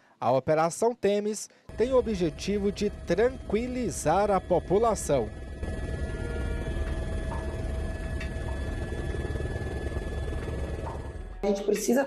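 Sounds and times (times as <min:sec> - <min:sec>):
faint steady whine: 0:01.7 - 0:11.4
helicopter rotor and engine rumble: 0:01.7 - 0:11.4.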